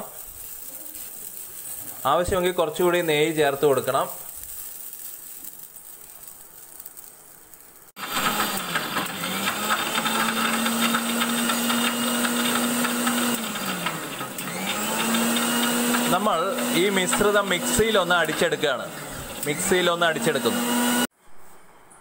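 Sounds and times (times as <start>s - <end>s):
mixer grinder motor whine: 8.0s - 21.1s.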